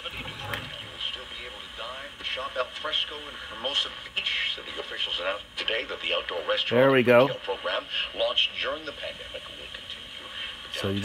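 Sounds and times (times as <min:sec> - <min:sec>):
radio hiss: 0:00.0 - 0:11.0
radio news speech: 0:00.0 - 0:11.0.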